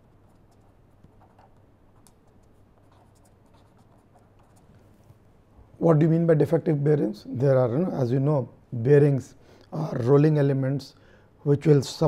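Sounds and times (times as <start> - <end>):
marker pen scratching on paper: 0.0 - 4.8
low room hum: 0.0 - 12.0.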